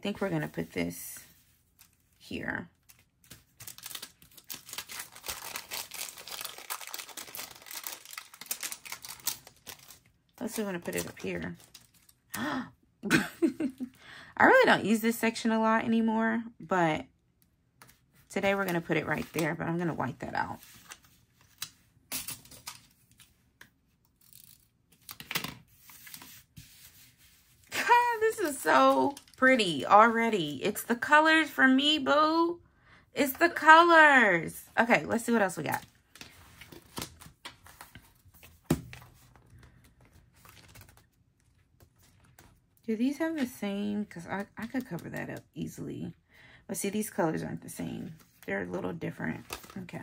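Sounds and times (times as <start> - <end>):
wax paper crinkling: 0.2 - 12.3, 24.0 - 29.8, 35.7 - 45.6, 49.2 - 50.0
paper rustling and scraping: 24.2 - 29.5.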